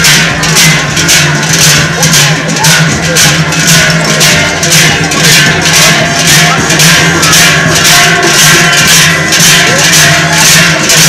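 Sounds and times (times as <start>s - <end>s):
large cowbells clanging: 0.0s - 11.0s.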